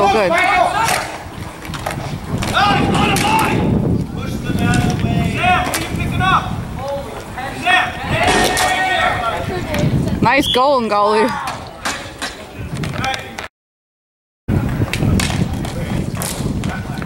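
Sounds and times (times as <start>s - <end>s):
people shouting: 0.0s - 1.2s, 2.5s - 3.7s, 4.6s - 6.5s, 7.4s - 9.6s.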